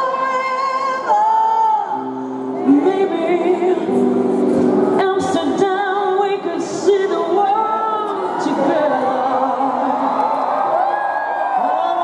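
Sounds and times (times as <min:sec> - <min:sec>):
woman singing with vibrato: 0:00.0 - 0:10.5, 0:11.3 - 0:12.0.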